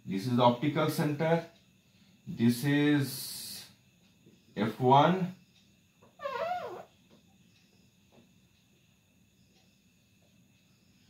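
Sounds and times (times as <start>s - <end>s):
high-pitched wavering animal call: 6.2s - 6.9s.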